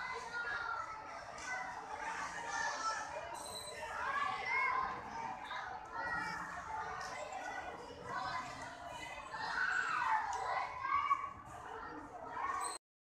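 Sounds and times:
children chattering and calling out: 0.0s - 12.8s.

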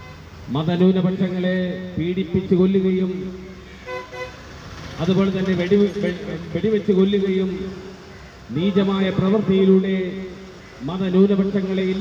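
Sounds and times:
vehicle horn toots: 0.0s - 0.3s, 3.7s - 4.4s.

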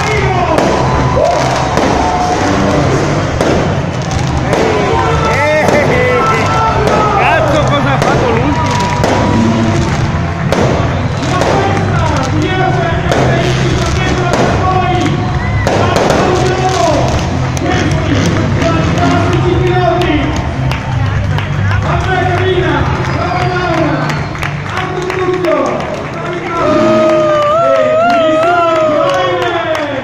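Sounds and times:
fireworks popping: 0.0s - 19.6s
crowd voices: 0.0s - 30.0s
music: 0.0s - 30.0s
crackle of pyrotechnic sparks: 0.1s - 18.4s.

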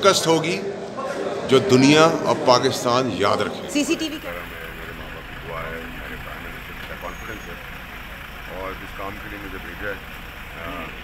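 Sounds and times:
faint voices: 0.6s - 11.0s
low rumble with hiss: 3.8s - 11.0s.

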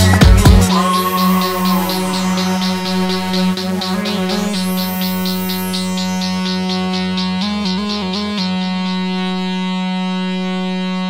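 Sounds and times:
held synthesizer note: 0.6s - 9.5s.

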